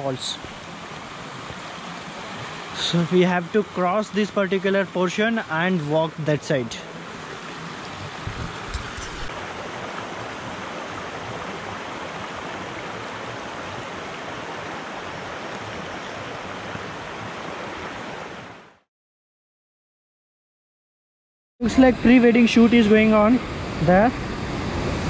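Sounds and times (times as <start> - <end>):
stream rushing: 0.0 - 18.8, 21.6 - 25.0.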